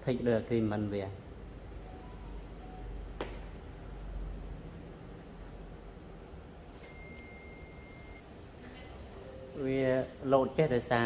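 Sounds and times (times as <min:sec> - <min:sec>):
faint room noise: 0:00.0 - 0:11.0
high-pitched electronic beep: 0:06.8 - 0:08.2.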